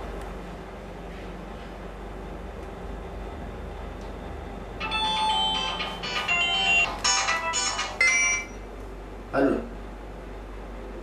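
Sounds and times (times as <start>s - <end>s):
low background hum: 0.0s - 11.0s
phone ringtone melody: 4.8s - 8.6s.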